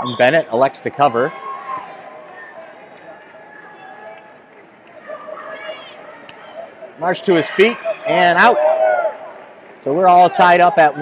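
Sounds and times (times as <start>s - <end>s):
echoing crowd chatter: 0.0s - 11.0s.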